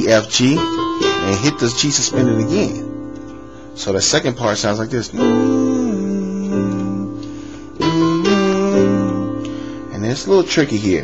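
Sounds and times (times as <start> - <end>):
keyboard playing sustained chords: 0.0 - 11.0.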